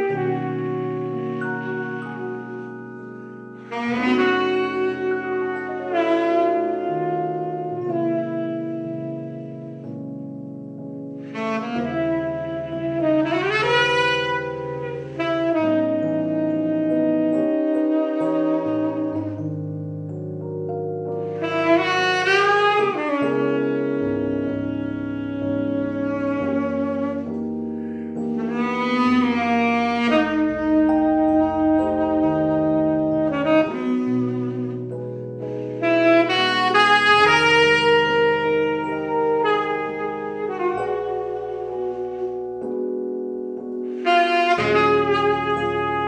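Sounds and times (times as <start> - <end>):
saxophone playing long notes: 0.0 - 10.2, 11.1 - 46.0
piano chords: 0.0 - 46.0.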